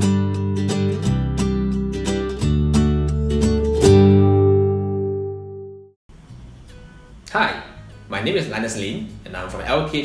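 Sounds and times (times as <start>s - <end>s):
strummed guitar chord ringing: 0.0s - 5.8s.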